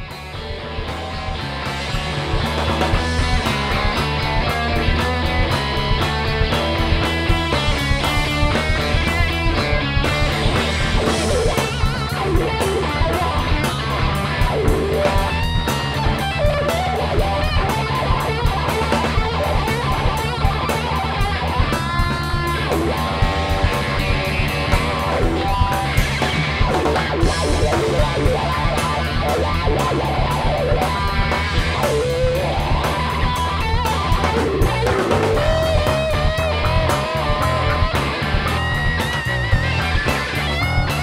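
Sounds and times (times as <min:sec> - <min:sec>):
drum kit with cymbal strokes: 0:00.0 - 0:41.0
electric bass: 0:00.0 - 0:41.0
electric guitar: 0:00.0 - 0:41.0.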